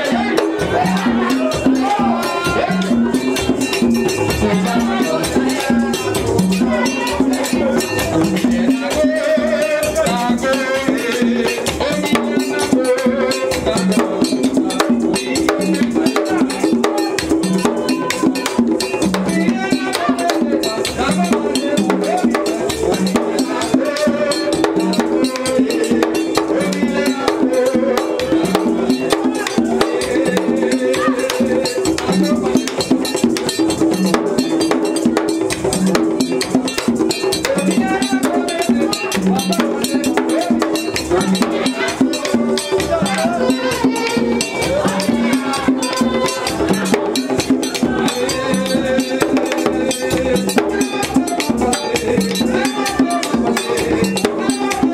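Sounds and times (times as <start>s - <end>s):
hand drums fast rhythm: 0.0s - 54.9s
voices singing: 0.0s - 54.9s.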